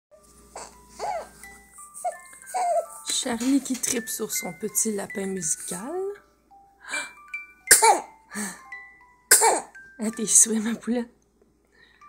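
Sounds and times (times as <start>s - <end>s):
musical toy playing slow tune: 0.2s - 10.8s, 11.4s - 12.0s.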